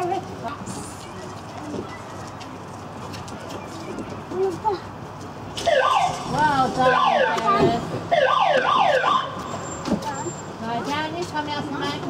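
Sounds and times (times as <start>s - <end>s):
low background murmur: 0.0s - 12.0s.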